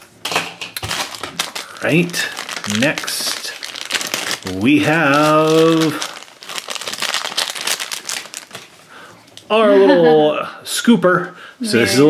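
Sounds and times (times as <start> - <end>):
foil wrapper crinkling: 0.2 - 9.5.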